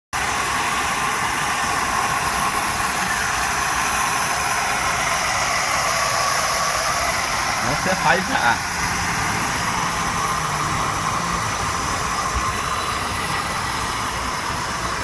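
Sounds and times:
gas burner hissing: 0:00.2 - 0:15.0.

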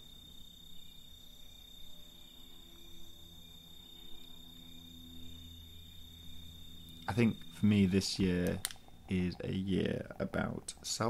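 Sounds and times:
crickets chirping: 0:00.0 - 0:11.0
low hum: 0:00.0 - 0:11.0.

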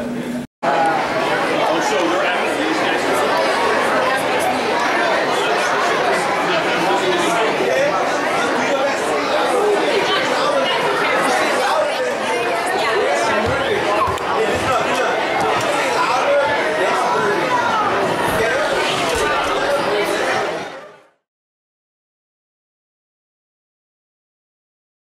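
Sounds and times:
crowd chatter: 0:00.0 - 0:21.3.

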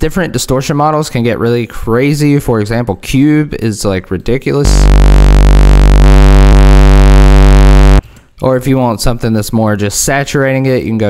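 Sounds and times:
distorted synth bass note: 0:04.6 - 0:08.0.

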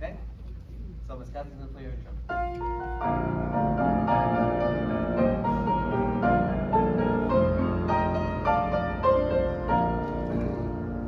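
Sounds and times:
piano playing a hymn: 0:02.3 - 0:11.0.

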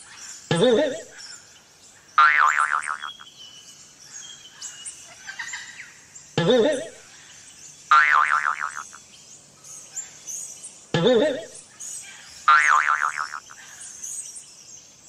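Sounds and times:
low warbling vocal call: 0:00.5 - 0:01.2, 0:06.4 - 0:07.0, 0:11.0 - 0:11.6
faint chirping: 0:02.2 - 0:14.3.

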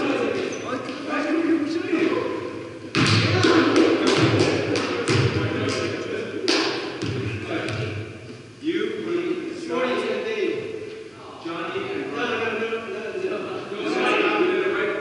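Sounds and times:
basketball bouncing on hardwood: 0:05.1 - 0:05.4.

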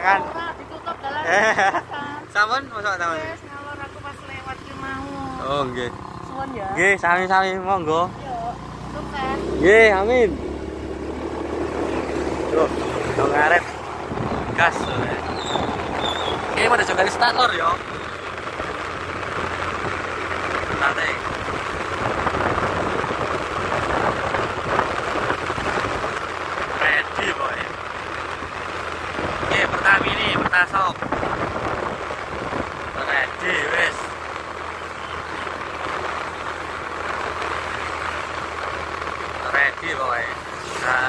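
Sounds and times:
vehicle road noise: 0:00.0 - 0:41.0.

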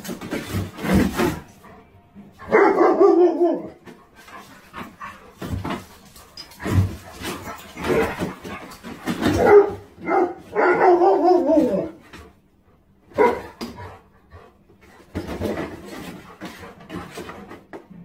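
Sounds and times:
dogs barking in play: 0:00.0 - 0:18.0.

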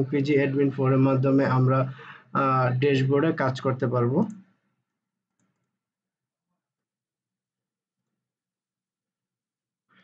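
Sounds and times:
man speaking: 0:00.0 - 0:04.4.

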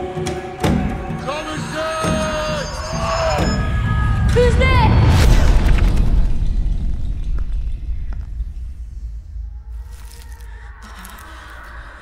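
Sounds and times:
deep low rumble: 0:02.5 - 0:12.0.

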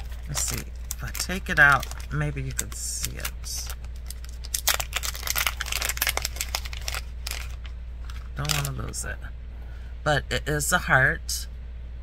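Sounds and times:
plastic packet crinkling: 0:00.0 - 0:09.0.

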